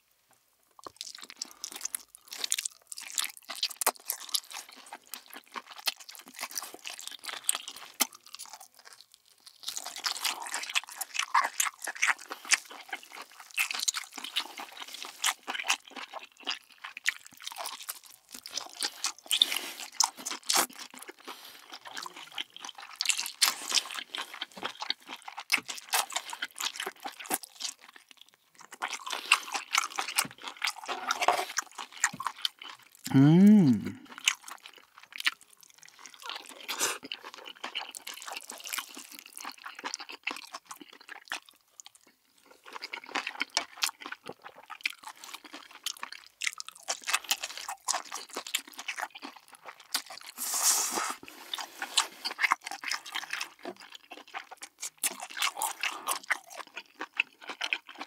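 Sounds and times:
chewing and biting: 0.8 - 33.1, 33.9 - 58.0.

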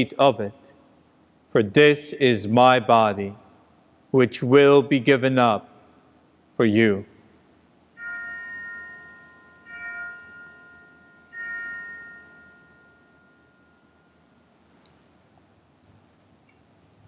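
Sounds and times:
altar bell ringing: 8.0 - 14.6.

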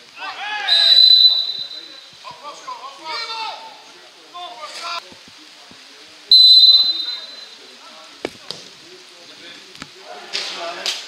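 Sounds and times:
faint players' voices: 0.0 - 11.0
referee's whistle blast: 0.6 - 2.1, 6.3 - 7.6.

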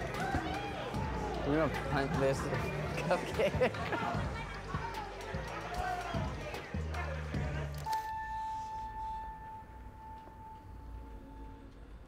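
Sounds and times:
bass-heavy beat: 4.0 - 7.8.

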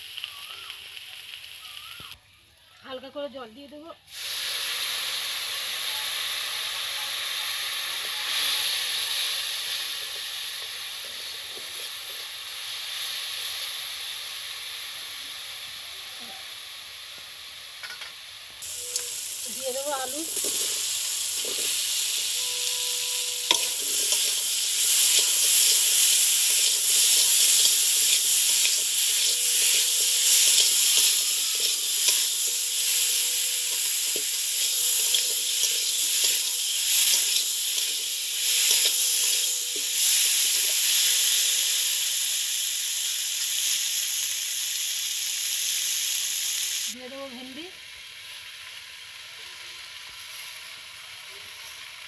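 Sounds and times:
potatoes sizzling in hot oil: 0.0 - 2.2, 2.8 - 52.0
metal spatula scraping a pan: 18.7 - 40.4.

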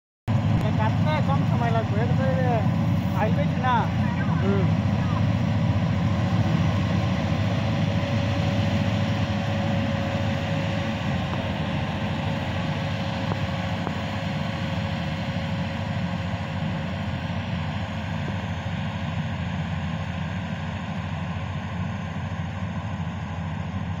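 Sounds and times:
combine harvester running: 0.3 - 24.0.

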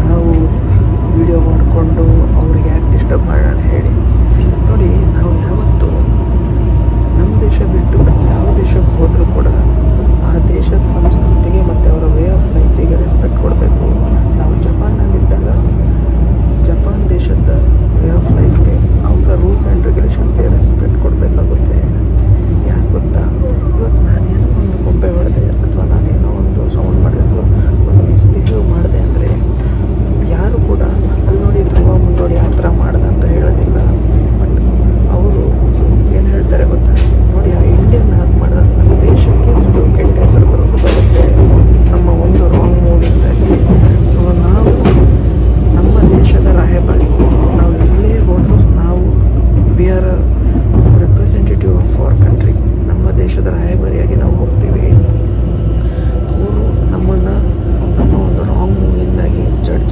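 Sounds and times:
train rumble from inside cabin: 0.0 - 59.9.

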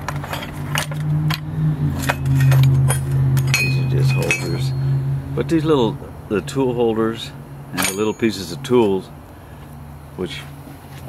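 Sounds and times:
steel tools clinking: 0.0 - 5.6, 7.7 - 9.1
steady low hum: 0.0 - 11.0.

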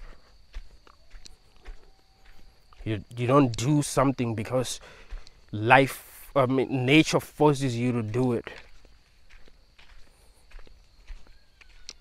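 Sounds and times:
footsteps on dirt track: 0.0 - 12.0.

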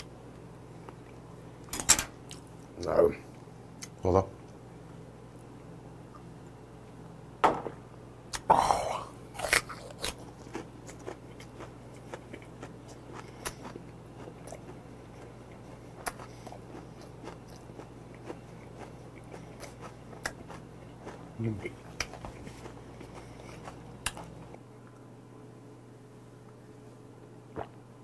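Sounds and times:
close chewing with crunching: 9.3 - 24.6.

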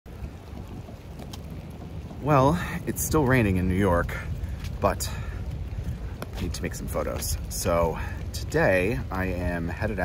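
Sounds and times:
light rain: 0.1 - 10.0
wind buffeting microphone: 0.1 - 10.0.

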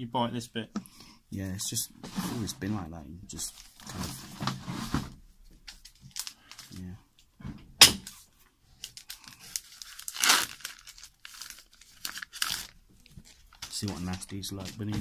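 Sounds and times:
packaging crinkling and tearing: 5.8 - 6.9, 8.8 - 15.0.

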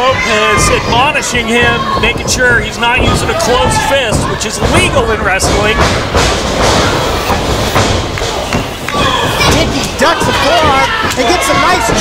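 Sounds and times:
crowd noise in a hall: 0.0 - 12.0.

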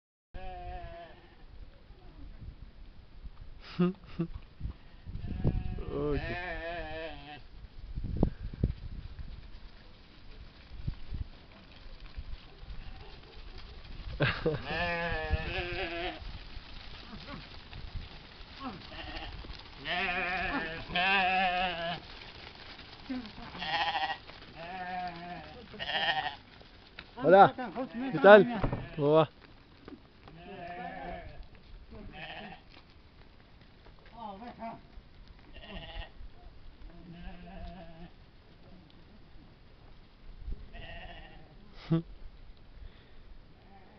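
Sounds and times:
sheep bleating: 0.4 - 1.4, 4.8 - 7.5, 14.6 - 16.2, 18.6 - 22.1, 23.0 - 26.5, 27.2 - 29.2, 30.3 - 32.8, 35.5 - 36.2, 36.9 - 38.2, 40.7 - 41.6.

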